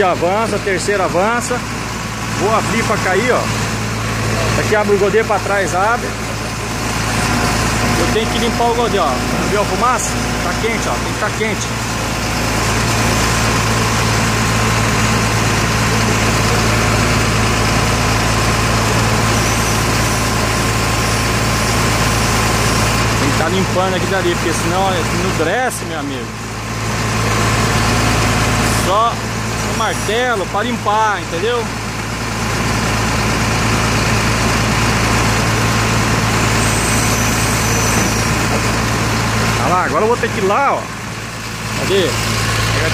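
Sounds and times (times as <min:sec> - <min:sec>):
truck engine running: 0:00.0 - 0:42.9.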